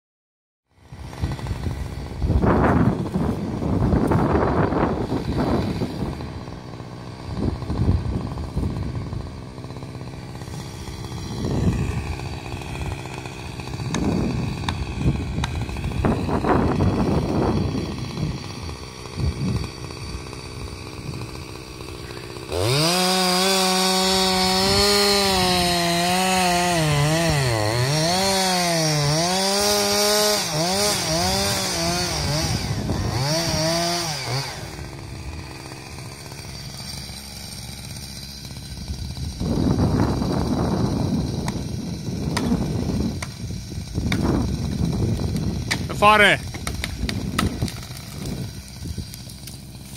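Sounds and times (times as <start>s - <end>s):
chainsaw running at high revs: 0.7s - 49.9s.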